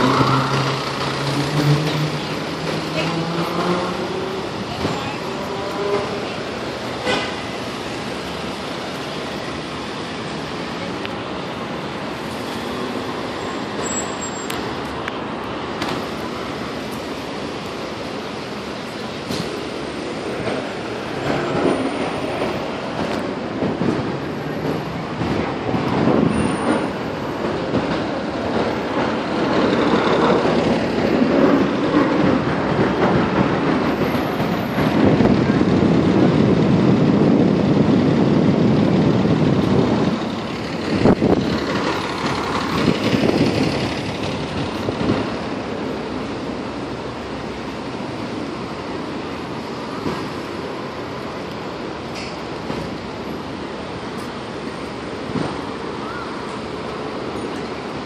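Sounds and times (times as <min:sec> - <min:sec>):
passing traffic rumble: 0:00.0 - 0:58.0.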